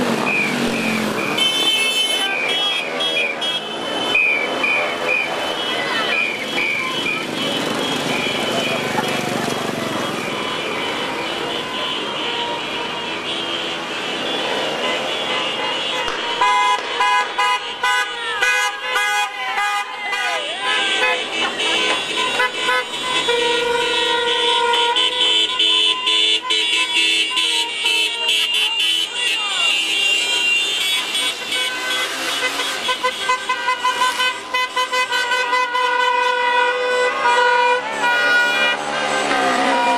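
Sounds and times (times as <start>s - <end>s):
car horns honking: 0.0s - 39.9s
vehicle engines: 0.0s - 39.9s
voices: 1.7s - 17.0s, 18.1s - 23.3s, 27.7s - 31.6s.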